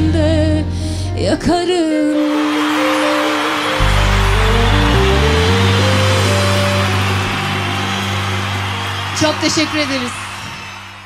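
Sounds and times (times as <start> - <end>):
crowd cheering and applause: 2.1 - 11.0
live band final chord: 2.2 - 11.0
bass notes held: 3.8 - 9.3.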